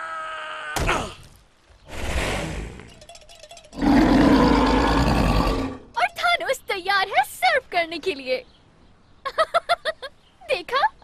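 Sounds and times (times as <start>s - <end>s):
cartoon troll roaring: 3.8s - 5.8s.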